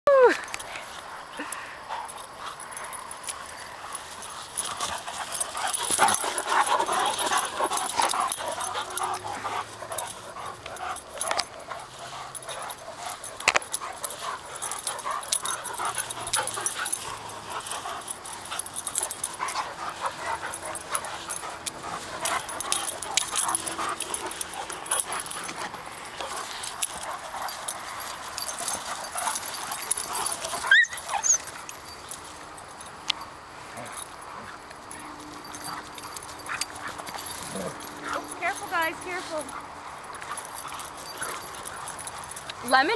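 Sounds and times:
dogs vocalizing in play: 0:01.1 - 0:32.6, 0:33.2 - 0:42.9.

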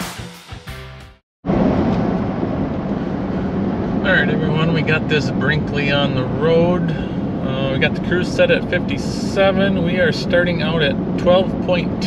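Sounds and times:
background music: 0:00.0 - 0:01.2
engine and road noise inside truck: 0:01.5 - 0:12.0.

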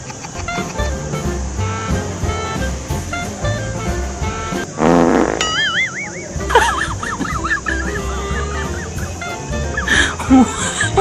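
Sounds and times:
background music: 0:00.4 - 0:11.0
warbling comic tones: 0:04.5 - 0:09.9
wet fart sound effect: 0:04.7 - 0:05.5.

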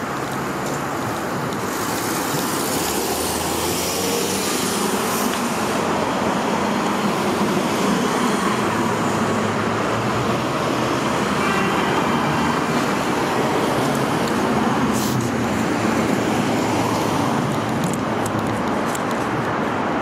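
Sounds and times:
freeway traffic noise: 0:00.0 - 0:20.0.

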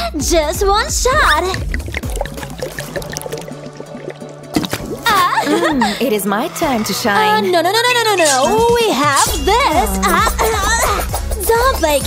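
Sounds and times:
background music: 0:00.0 - 0:12.0
soda glugging out of bottles: 0:01.4 - 0:05.4.

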